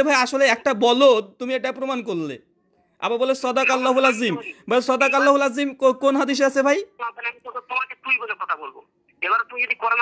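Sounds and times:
speech over phone call: 2.8s - 10.0s.

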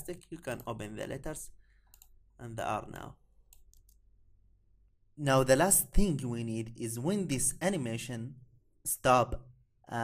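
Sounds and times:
computer mouse clicks: 1.9s - 2.2s, 3.5s - 4.1s.

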